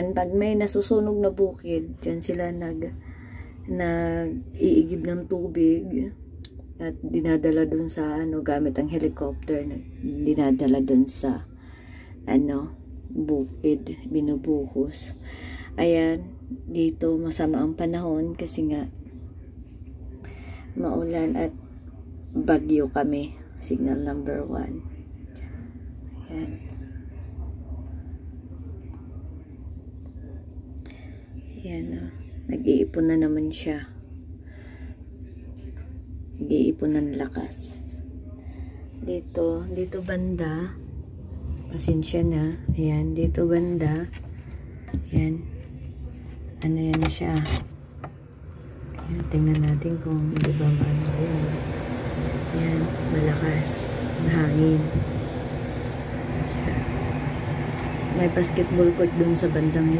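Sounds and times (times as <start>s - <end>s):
faint steady hum: 0.0s - 59.9s
wind buffeting microphone: 49.2s - 59.9s.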